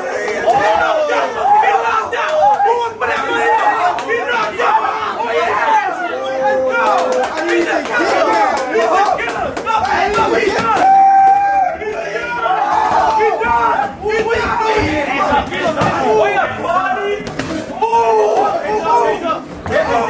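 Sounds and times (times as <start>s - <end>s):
spectators shouting and cheering: 0.0s - 20.0s.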